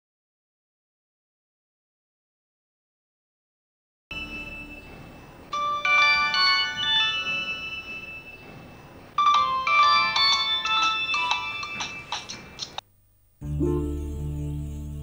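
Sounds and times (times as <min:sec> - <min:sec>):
mobile phone ringtone chiming: 0:04.1 - 0:12.6.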